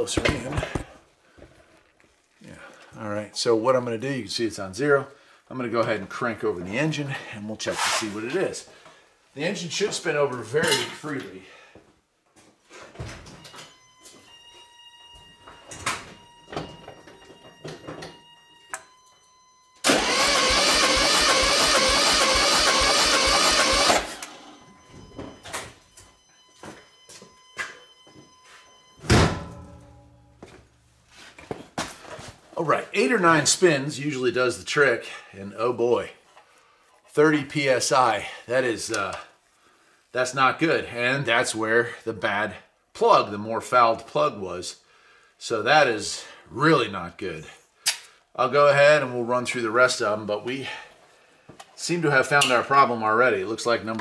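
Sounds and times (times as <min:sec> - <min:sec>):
car engine cranking on starter: 0:19.8 - 0:24.5
loud thump: 0:29.0 - 0:29.8.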